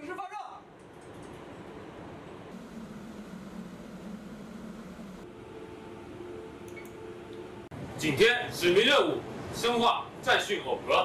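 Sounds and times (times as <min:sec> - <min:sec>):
machinery and ventilation hiss: 0:00.0 - 0:11.0
low hum: 0:01.4 - 0:08.0.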